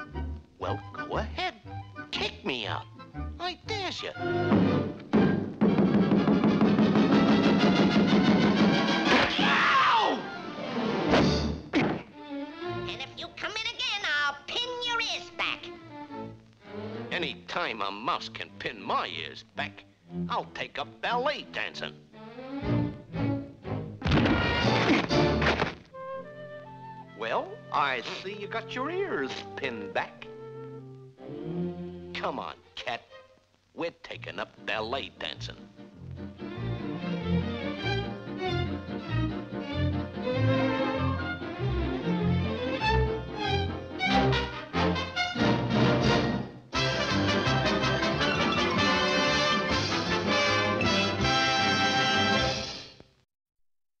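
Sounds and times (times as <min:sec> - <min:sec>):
orchestral score: 0:00.0 - 0:13.0, 0:15.8 - 0:17.8, 0:20.1 - 0:32.5, 0:35.3 - 0:52.9
cartoon thumps and whacks: 0:04.5 - 0:09.5, 0:11.1 - 0:12.1, 0:24.0 - 0:25.8
orchestral music held chord: 0:40.1 - 0:52.6.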